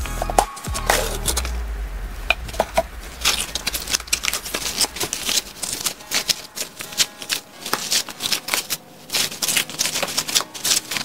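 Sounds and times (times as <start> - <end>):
slime crackling and squelching: 0.8 - 11.0.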